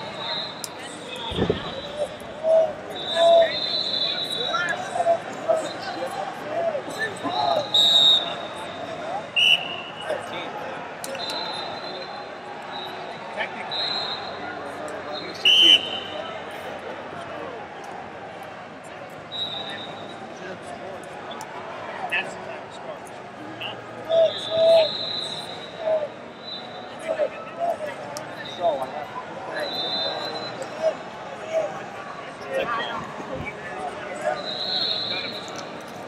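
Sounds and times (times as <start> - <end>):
crowd chatter and shouts: 0.0 - 36.0
referee whistle blasts: 0.1 - 4.8, 7.3 - 10.2, 11.1 - 13.1, 13.7 - 14.5, 15.1 - 16.3, 19.3 - 20.2, 24.2 - 27.1, 29.6 - 30.7, 34.2 - 35.7.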